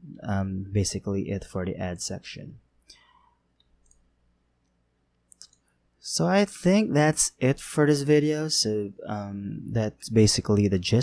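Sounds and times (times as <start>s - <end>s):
faint computer mouse clicks: 3.6s - 5.7s.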